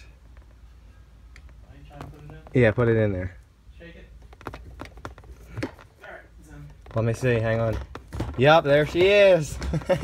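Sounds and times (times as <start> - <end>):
gear shifter clicking and knocking: 4.2 - 5.9.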